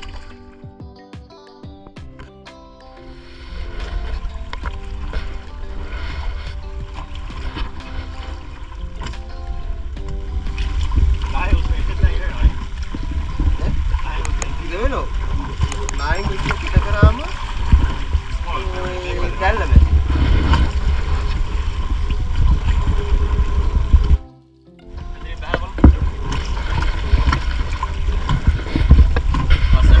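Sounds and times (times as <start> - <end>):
wind buffeting microphone: 3.6 - 24.2, 25.0 - 30.0
people talking: 11.3 - 12.6, 14.0 - 15.1, 15.7 - 17.3, 18.4 - 19.9, 25.0 - 26.4, 29.7 - 30.0.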